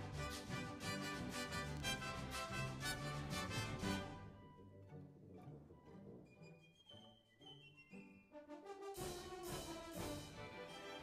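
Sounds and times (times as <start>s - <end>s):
orchestra playing lively folk tune: 0.0s - 5.7s, 8.7s - 11.0s.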